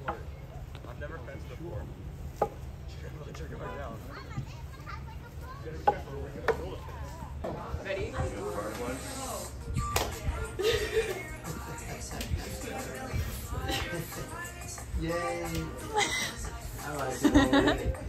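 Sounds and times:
faint voices: 0.0s - 18.0s
sticks knocking on logs: 2.4s - 2.6s.

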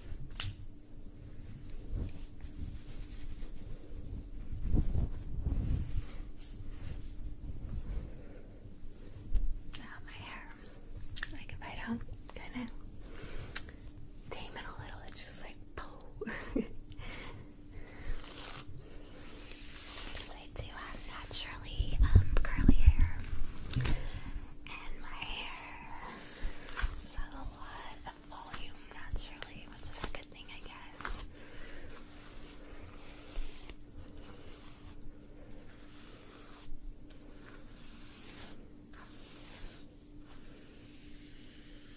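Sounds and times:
faint steady hum: 0.0s - 41.9s
hair swishing: 1.4s - 8.2s, 17.8s - 41.9s
person whispering: 9.7s - 12.8s, 14.3s - 16.2s, 20.2s - 23.8s, 24.6s - 26.4s, 27.0s - 31.2s.

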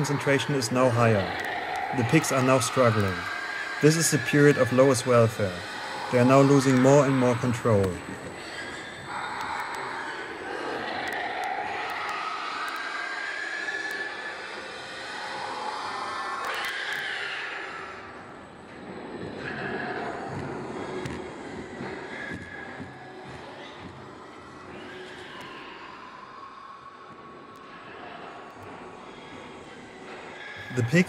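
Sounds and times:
pigs screaming: 0.0s - 31.0s.

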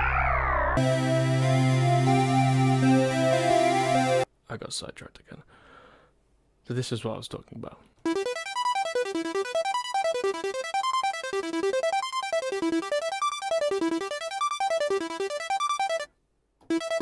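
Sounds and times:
retro synth arpeggio: 0.8s - 4.2s, 8.1s - 16.1s, 16.7s - 17.0s.

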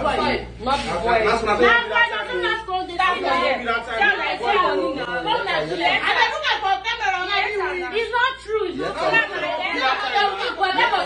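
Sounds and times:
people chattering: 0.0s - 11.0s
woman talking: 1.6s - 11.0s.

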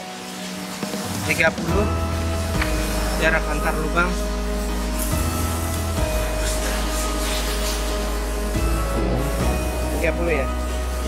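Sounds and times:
background music held tones: 0.0s - 11.0s.

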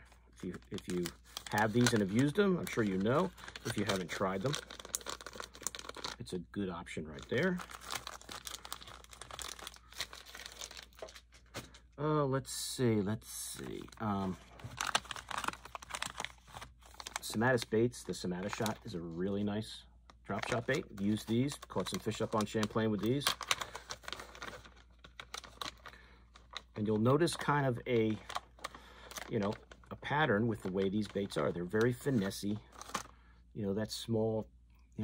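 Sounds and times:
plastic packages crinkling: 0.0s - 6.4s, 7.1s - 11.8s, 13.7s - 19.0s, 20.3s - 33.2s.

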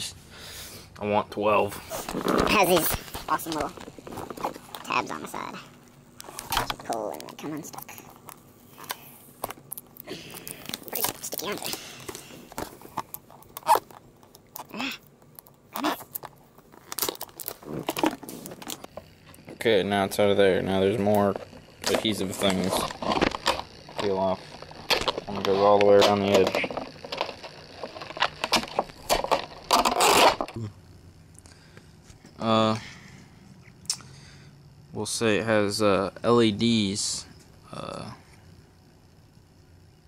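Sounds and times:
packaging handling: 8.2s - 19.1s, 21.2s - 30.5s
tape peeling off plastic: 13.1s - 18.9s, 24.6s - 30.5s.

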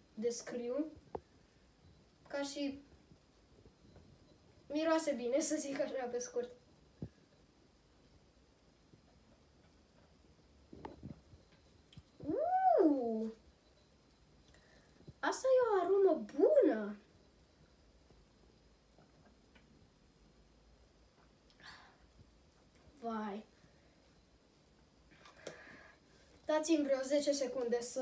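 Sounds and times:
child saying ooh: 12.2s - 13.4s.

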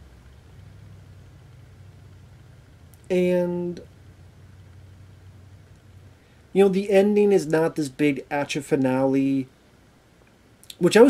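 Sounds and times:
low hum with light hiss: 0.0s - 11.0s.

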